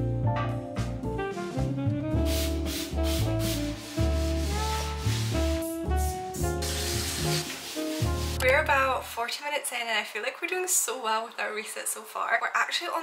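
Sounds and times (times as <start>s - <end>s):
jazzy background music: 0.0s - 9.3s
scrubbing noise: 1.3s - 8.6s.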